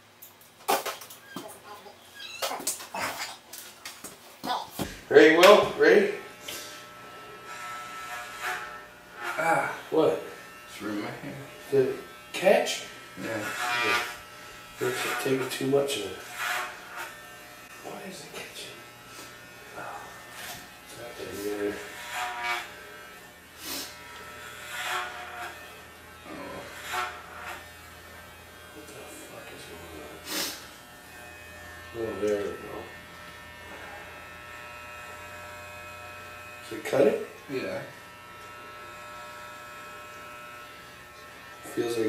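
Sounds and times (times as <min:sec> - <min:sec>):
electric hair clippers buzzing: 0:05.3 - 0:42.0.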